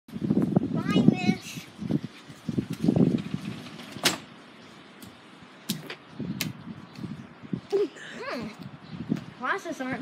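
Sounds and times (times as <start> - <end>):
sliding glass door rumbling: 2.4 - 4.3.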